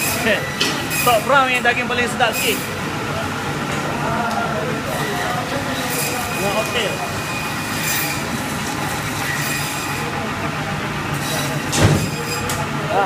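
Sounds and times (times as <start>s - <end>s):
machinery hum: 0.0s - 13.0s
trolleys rolling and squealing: 4.9s - 10.3s, 11.1s - 12.8s
loud metal clank: 11.2s - 12.6s.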